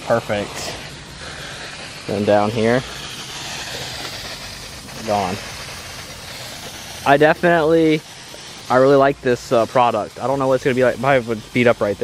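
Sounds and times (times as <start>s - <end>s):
water spraying onto car paint: 0.0s - 12.0s.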